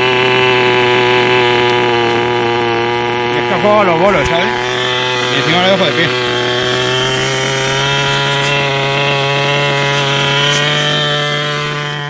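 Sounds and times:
small nitro engine buzzing: 0:00.0 - 0:12.0.

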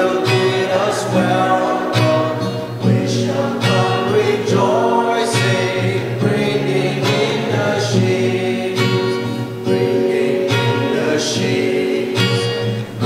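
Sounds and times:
person singing: 0:00.0 - 0:09.1
strummed acoustic guitar: 0:00.0 - 0:13.0.

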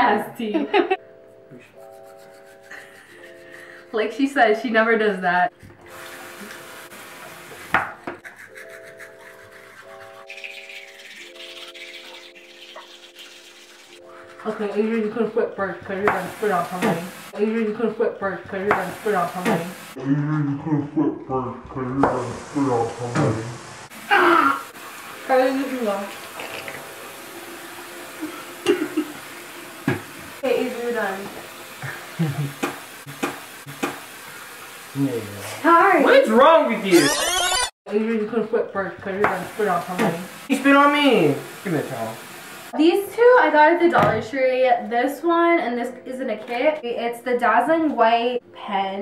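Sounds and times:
background music of held chords: 0:00.3 - 0:04.4
toothbrush scrubbing teeth: 0:01.7 - 0:04.2, 0:07.4 - 0:15.6, 0:25.8 - 0:26.9
tap running into sink: 0:29.8 - 0:30.3, 0:32.4 - 0:34.1, 0:39.2 - 0:40.3.

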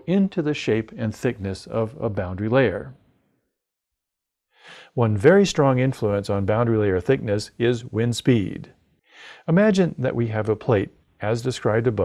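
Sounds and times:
man breathing in: 0:04.5 - 0:05.0, 0:09.0 - 0:09.4.

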